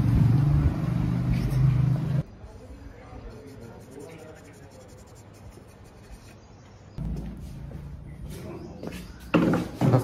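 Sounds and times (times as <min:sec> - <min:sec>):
scratching and rubbing: 0:03.3 - 0:06.4.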